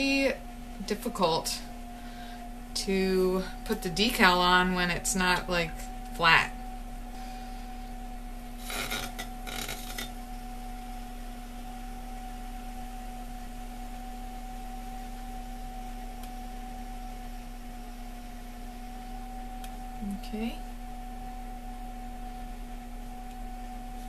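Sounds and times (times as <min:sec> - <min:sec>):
potter's wheel humming whine: 0:00.0 - 0:24.0.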